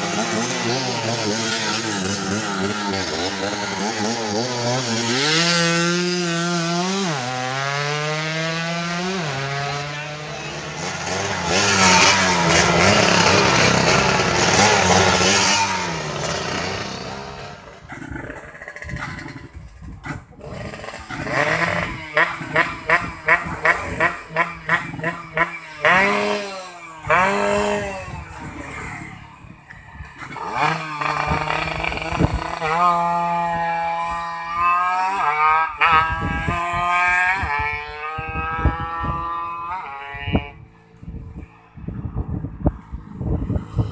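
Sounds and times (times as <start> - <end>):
engine blipped and revved: 0.0 - 29.5, 30.2 - 40.7
moped engine passing at high revs: 0.0 - 43.9.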